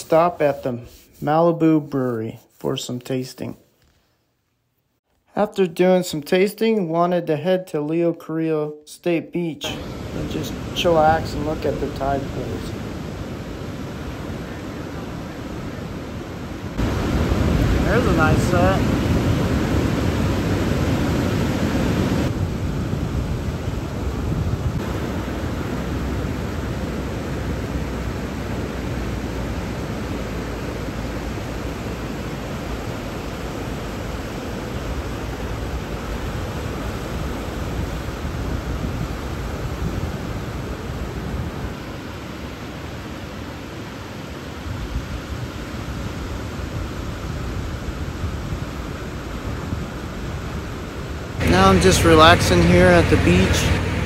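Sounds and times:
ocean waves breaking: 0:09.6 - 0:54.0.

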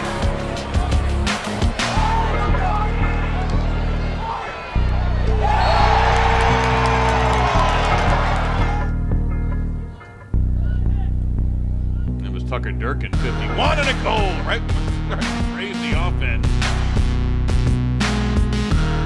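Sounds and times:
crowd cheering: 0:00.0 - 0:09.0
background music with bass line: 0:00.0 - 0:19.0.

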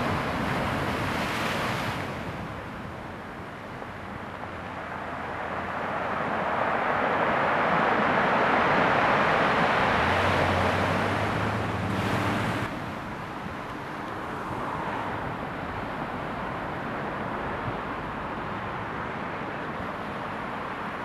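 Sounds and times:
surf breaking on rocky shore: 0:00.0 - 0:03.0.

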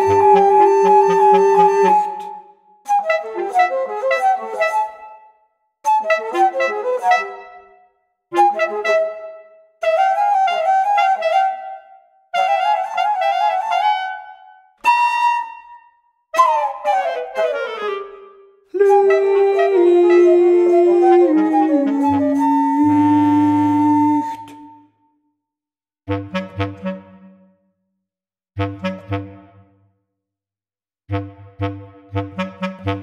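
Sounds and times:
bass clarinet: 0:00.0 - 0:05.1, 0:05.9 - 0:07.6, 0:08.3 - 0:11.7, 0:16.4 - 0:24.7, 0:26.1 - 0:27.4, 0:28.6 - 0:29.7, 0:31.1 - 0:33.0
bass flute: 0:00.0 - 0:05.3, 0:05.9 - 0:25.0, 0:26.1 - 0:27.3, 0:28.6 - 0:29.7, 0:31.1 - 0:33.0.

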